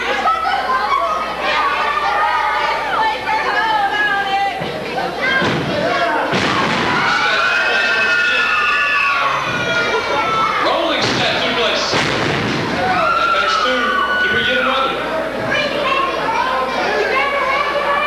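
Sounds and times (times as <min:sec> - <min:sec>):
spectators shouting: 0:05.2 - 0:11.9, 0:12.6 - 0:18.0.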